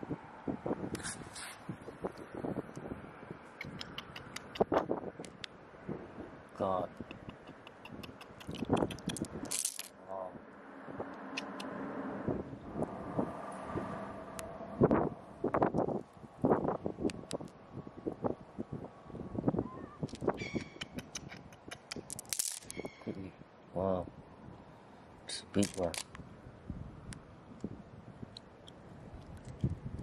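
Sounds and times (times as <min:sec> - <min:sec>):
stones clicking together: 0:07.1 - 0:09.9, 0:20.1 - 0:22.8, 0:25.6 - 0:26.2.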